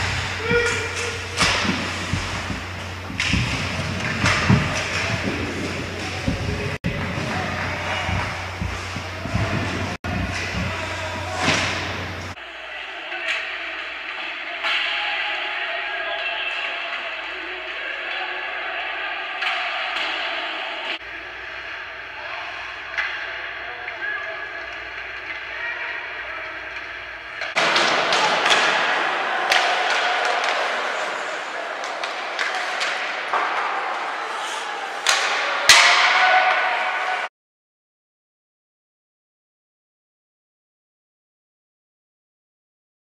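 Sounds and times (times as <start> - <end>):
pucks and bodies slamming boards: 0.0 - 12.4, 26.7 - 31.2, 31.8 - 37.1
arena crowd hum: 0.0 - 37.3.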